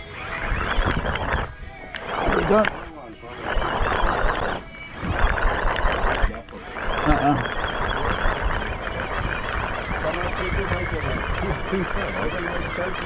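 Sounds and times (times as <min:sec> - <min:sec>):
wind on microphone: 0:00.0 - 0:13.0.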